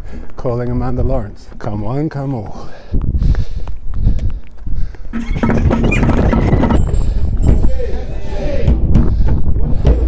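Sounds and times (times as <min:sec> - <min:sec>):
footsteps on stone steps: 0:02.3 - 0:07.7
wind on microphone: 0:02.9 - 0:10.0.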